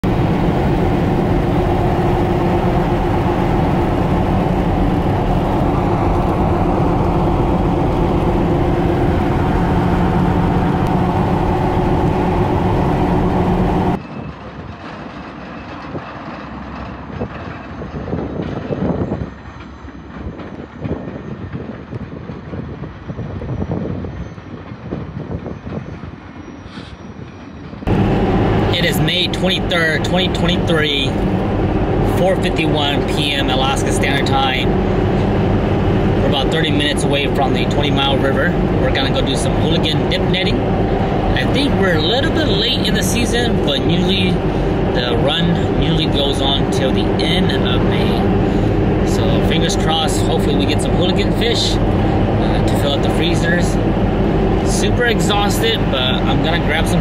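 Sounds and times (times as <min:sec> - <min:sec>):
passing train rumble: 0:00.0 - 0:57.0
vehicle road and engine noise: 0:00.0 - 0:57.0.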